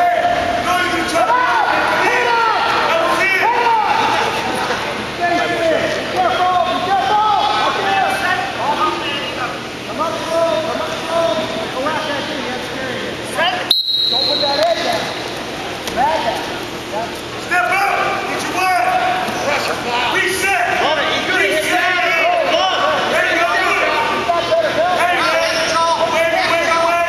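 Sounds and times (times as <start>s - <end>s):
men shouting: 0.0s - 8.6s, 17.5s - 27.0s.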